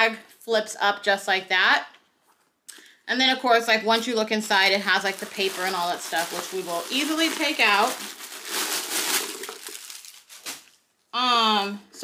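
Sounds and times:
packing paper crinkling: 3.9s - 10.9s.

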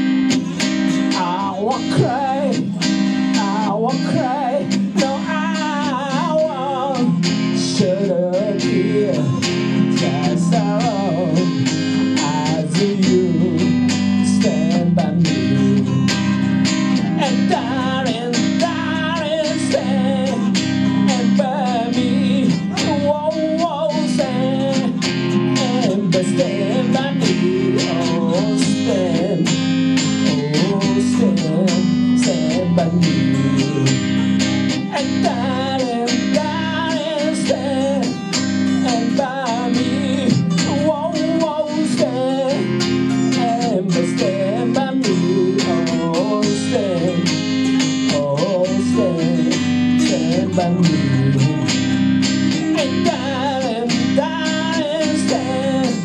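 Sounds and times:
picked guitar lead melody: 0.0s - 56.0s
strummed acoustic guitar chords: 0.0s - 56.0s.

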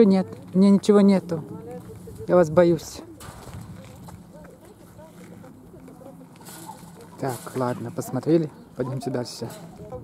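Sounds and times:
distant voices talking: 0.0s - 10.0s
low outdoor background hum: 0.0s - 10.0s.

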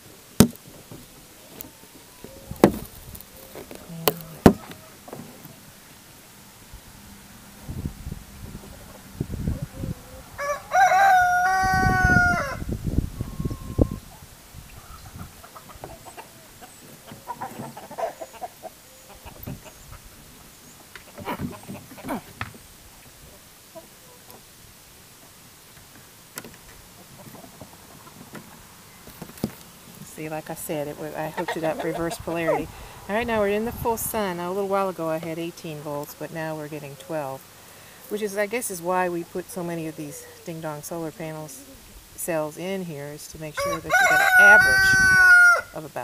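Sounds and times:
rooster crowing: 10.1s - 12.7s, 43.6s - 45.8s.

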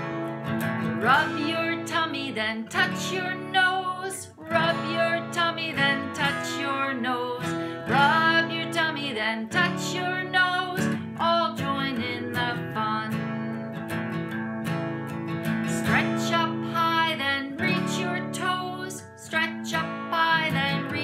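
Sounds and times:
acoustic guitar strumming: 0.0s - 21.0s
woman singing: 0.8s - 14.0s, 15.5s - 21.0s.

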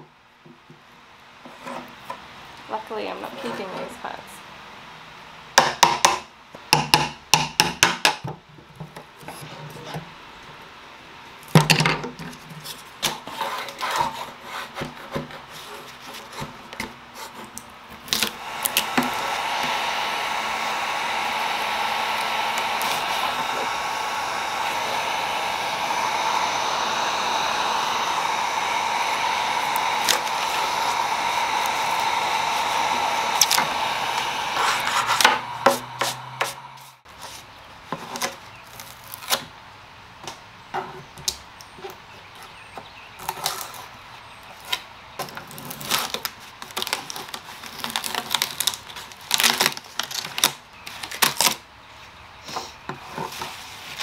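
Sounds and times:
chisel scraping against wood: 12.6s - 17.6s, 34.6s - 36.6s
heat gun running: 18.1s - 37.0s
scraper lifting veneer: 18.1s - 39.4s.

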